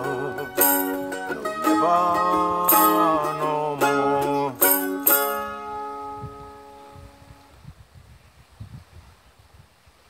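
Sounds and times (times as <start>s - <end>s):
mandolin chord ringing: 0.0s - 7.5s
wind buffeting microphone: 3.9s - 10.0s.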